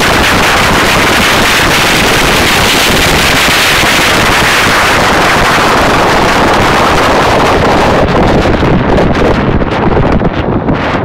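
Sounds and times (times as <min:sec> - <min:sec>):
road noise: 0:00.0 - 0:11.0
wind buffeting microphone: 0:00.0 - 0:11.0.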